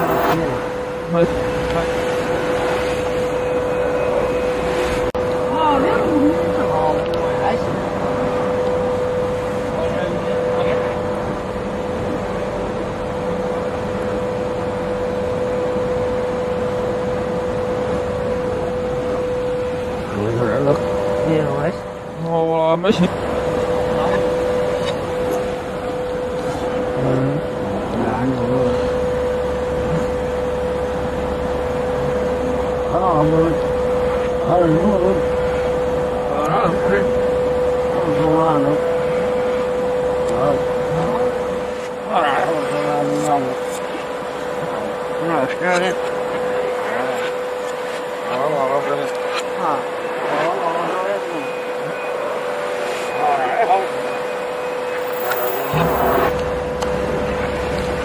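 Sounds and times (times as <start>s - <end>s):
constant machine whine: 0.0s - 58.0s
factory machinery humming: 0.0s - 58.0s.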